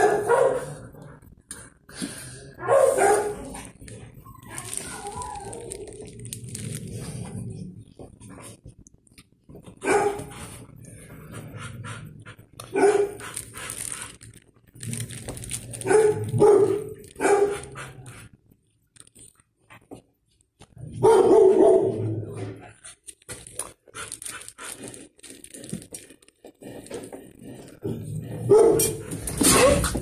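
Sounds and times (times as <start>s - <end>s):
dog barking: 0.0s - 0.7s, 2.6s - 3.5s, 9.8s - 10.4s, 12.7s - 13.3s, 15.8s - 17.9s, 21.0s - 22.0s, 28.5s - 29.0s.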